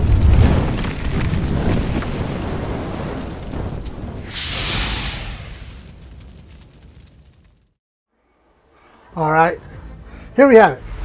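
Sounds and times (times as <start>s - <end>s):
rumbling explosion sound effect: 0.0s - 7.8s.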